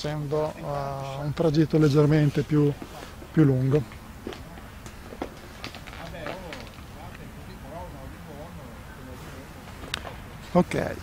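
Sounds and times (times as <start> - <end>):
faint distant voices: 0.0 - 11.0
low background hiss: 0.0 - 11.0.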